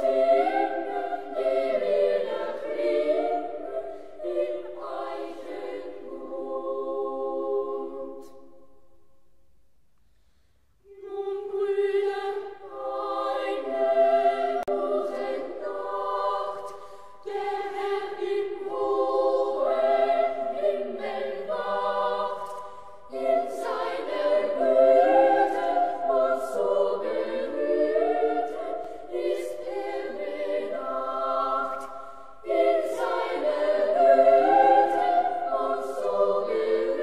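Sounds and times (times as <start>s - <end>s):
choir singing in harmony: 0.0s - 9.0s, 10.8s - 37.0s.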